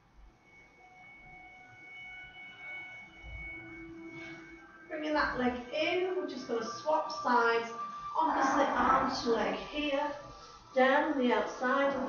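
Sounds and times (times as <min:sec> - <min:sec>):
ringing bell-like tones: 0:00.3 - 0:09.9.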